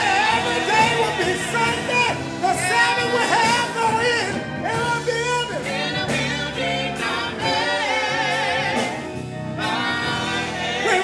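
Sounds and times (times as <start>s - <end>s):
group singing gospel song: 0.0s - 11.0s
instrumental accompaniment: 0.0s - 11.0s.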